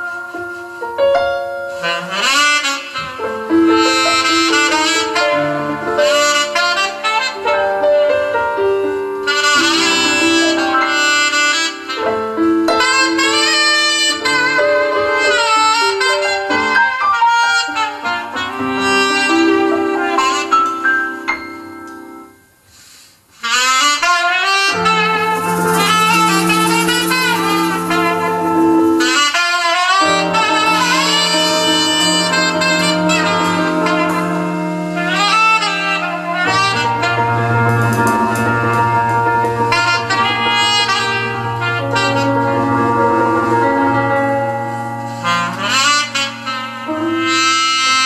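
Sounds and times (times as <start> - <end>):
saxophone melody: 0.0 - 21.3, 23.3 - 48.0
cymbals: 1.8 - 7.7, 9.2 - 48.0
bass: 2.4 - 17.1, 24.7 - 29.4, 30.0 - 48.0
held keyboard chords: 3.6 - 17.0, 24.7 - 48.0.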